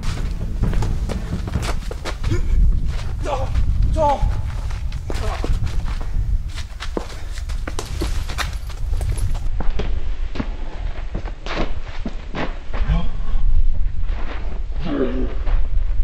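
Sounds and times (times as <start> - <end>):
sharp knocks of strikes: 0.0 - 4.6
feet scuffling: 0.0 - 9.5.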